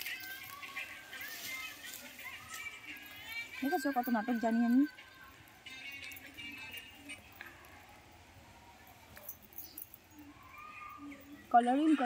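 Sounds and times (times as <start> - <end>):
faint high chirping calls: 0.0 - 12.0.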